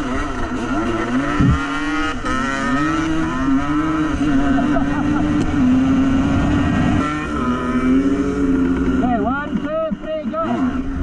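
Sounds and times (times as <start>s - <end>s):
off-road vehicle engine revving: 0.0s - 11.0s
low thump: 1.4s - 1.6s.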